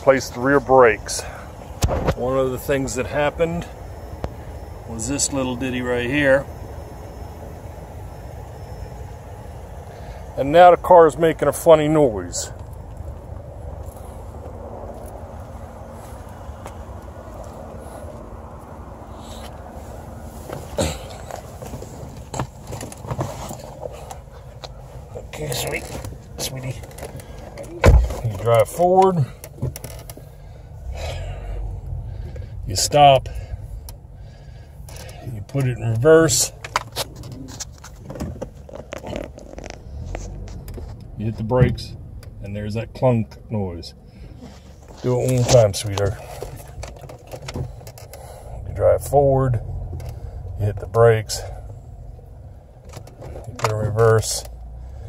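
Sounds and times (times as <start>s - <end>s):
steady low rumble: 0.0s - 55.0s
light clicks and rustles: 36.6s - 41.2s, 44.3s - 48.4s.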